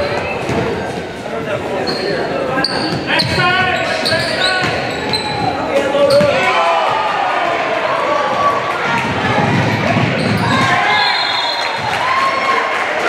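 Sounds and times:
voices of players and crowd: 0:00.0 - 0:13.0
sneaker squeaks: 0:01.8 - 0:06.4, 0:10.0 - 0:11.8.

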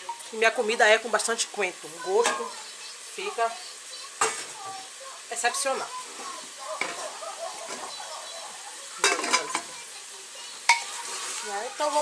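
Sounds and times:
meat sizzling in a pot: 0:00.0 - 0:12.0
knocks against a pot: 0:09.0 - 0:09.7.

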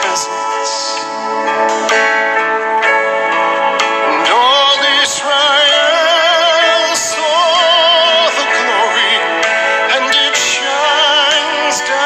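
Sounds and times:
person singing with vibrato: 0:00.0 - 0:12.0
sustained instrumental accompaniment: 0:00.0 - 0:12.0.

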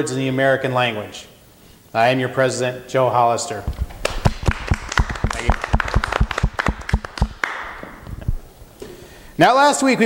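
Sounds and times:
people applauding: 0:04.0 - 0:08.0.

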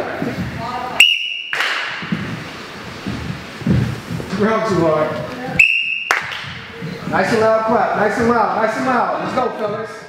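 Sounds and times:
gym room noise: 0:00.0 - 0:10.0
high-pitched whistle tone: 0:01.0 - 0:01.6, 0:05.6 - 0:06.2
faint thuds: 0:01.8 - 0:05.2.

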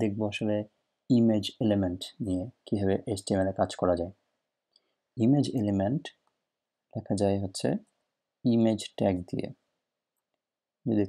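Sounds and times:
man speaking: 0:00.0 - 0:04.1, 0:05.2 - 0:06.1, 0:07.0 - 0:07.8, 0:08.5 - 0:09.6.

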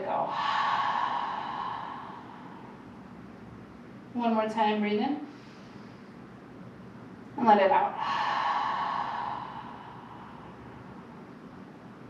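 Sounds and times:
woman sighing exhale: 0:00.3 - 0:02.8, 0:08.0 - 0:10.6.

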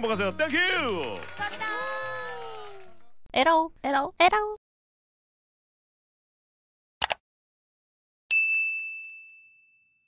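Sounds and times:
bright bell ding: 0:08.3 - 0:10.0.

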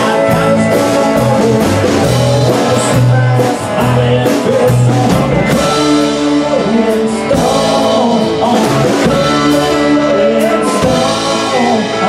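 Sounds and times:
acoustic guitar: 0:00.0 - 0:12.0
drum kit with cymbal hits: 0:00.0 - 0:12.0
electric bass: 0:00.0 - 0:12.0
electric guitar: 0:00.0 - 0:12.0.

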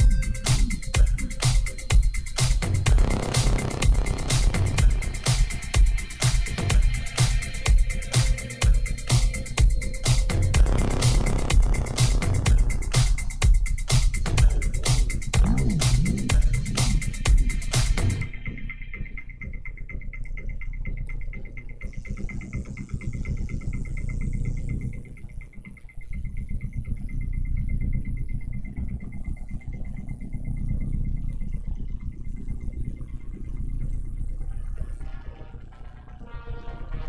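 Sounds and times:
fast high ticking: 0:00.0 - 0:07.2, 0:08.7 - 0:18.3
muffled electronic dance music: 0:00.0 - 0:37.0.

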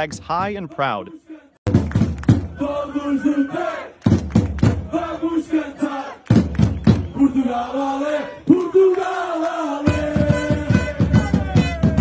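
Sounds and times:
crowd singing: 0:00.5 - 0:01.6, 0:02.4 - 0:12.0
crowd chanting: 0:00.8 - 0:01.6, 0:02.4 - 0:12.0
hand claps: 0:01.8 - 0:02.5, 0:04.0 - 0:04.8, 0:06.2 - 0:07.0.

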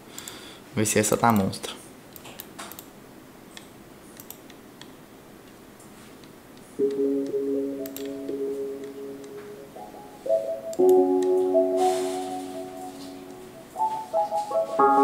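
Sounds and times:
slow piano chords: 0:06.8 - 0:15.0.

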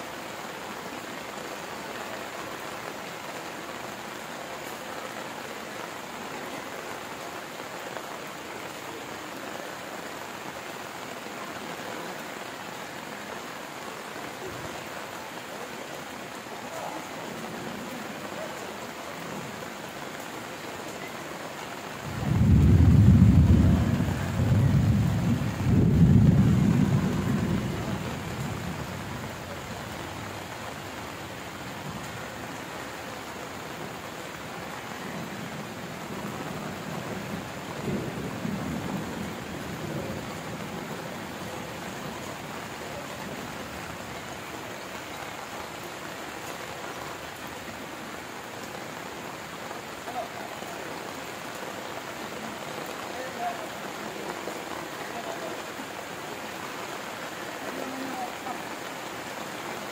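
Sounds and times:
heavy rain on a metal roof: 0:00.0 - 0:59.9
rolling thunder: 0:22.0 - 0:29.3.

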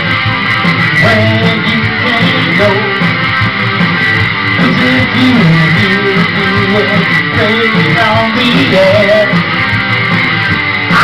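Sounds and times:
strummed guitar: 0:00.0 - 0:11.0.

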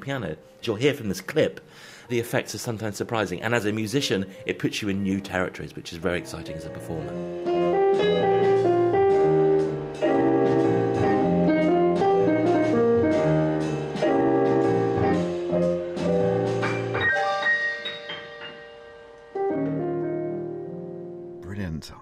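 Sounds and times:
piano chords over bass notes: 0:04.4 - 0:21.7.

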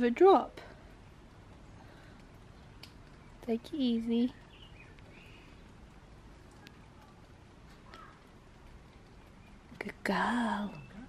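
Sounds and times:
outdoor background hush: 0:00.0 - 0:11.0.

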